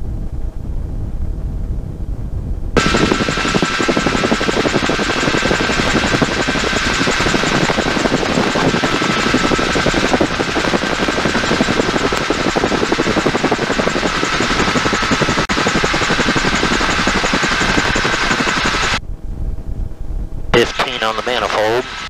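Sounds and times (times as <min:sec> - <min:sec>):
helicopter rotor beating: 0:02.6 - 0:22.0
helicopter piston engine running: 0:02.8 - 0:19.0, 0:20.6 - 0:22.0.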